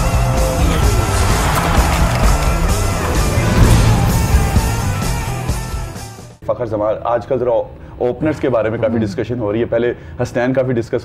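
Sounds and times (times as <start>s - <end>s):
rushing swoosh effect: 0.6s - 6.1s
tv theme music with bass beat: 0.6s - 6.3s.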